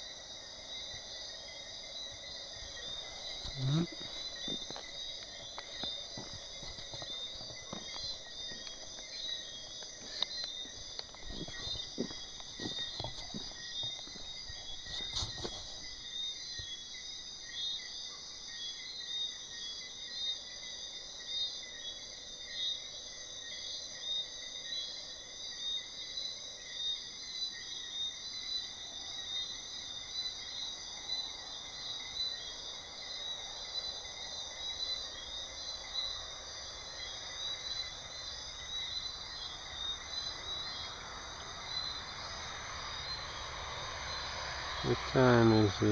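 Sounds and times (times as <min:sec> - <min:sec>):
crickets trilling: 0:00.0 - 0:45.9.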